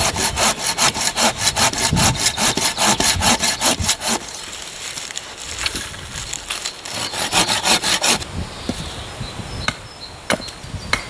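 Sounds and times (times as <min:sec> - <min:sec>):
pruning saw cutting branch: 0:00.0 - 0:04.5, 0:06.9 - 0:08.2.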